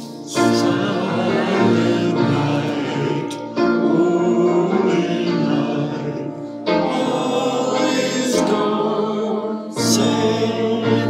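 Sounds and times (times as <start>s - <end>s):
congregation singing a hymn: 0.0s - 11.0s
piano: 0.0s - 11.0s.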